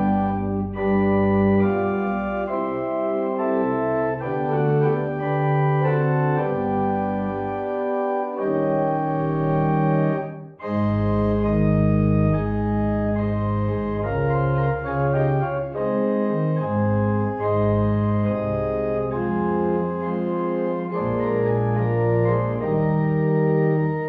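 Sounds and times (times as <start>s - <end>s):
organ playing held chords: 0.0s - 24.0s.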